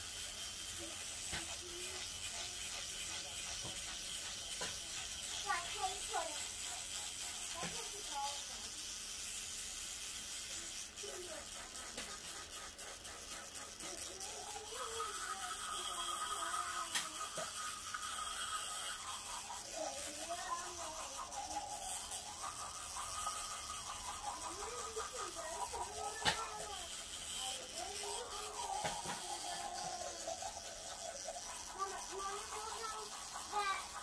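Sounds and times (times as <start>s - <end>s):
electric toothbrush buzzing: 0.0s - 34.0s.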